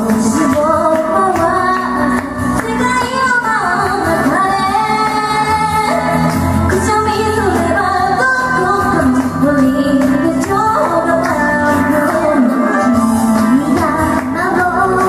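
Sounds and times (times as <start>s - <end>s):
backing track: 0.0s - 15.0s
woman singing pop song: 0.0s - 15.0s.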